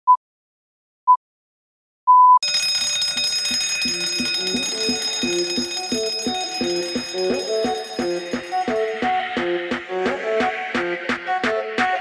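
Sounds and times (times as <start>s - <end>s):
countdown beeps: 2.1s - 9.5s
electric gong bell ringing: 2.4s - 8.0s.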